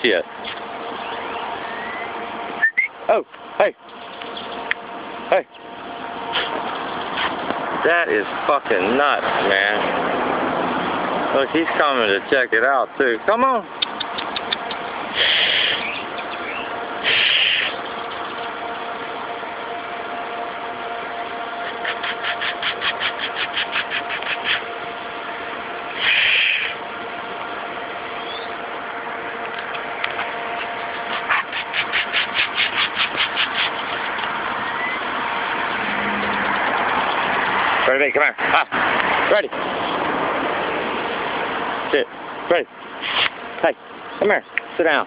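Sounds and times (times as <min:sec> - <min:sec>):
engine idling: 0:00.0 - 0:45.0.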